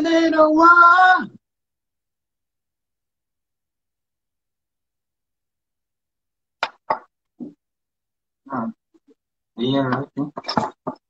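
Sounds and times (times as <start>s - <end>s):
sharp pops: 6.6s - 7.5s.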